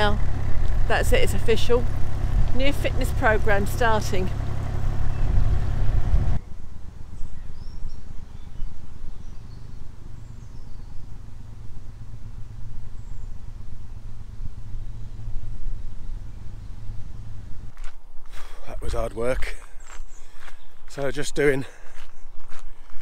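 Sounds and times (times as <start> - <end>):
wind rumble on microphone: 0.0 - 17.9
faint bird chirps: 6.4 - 17.3.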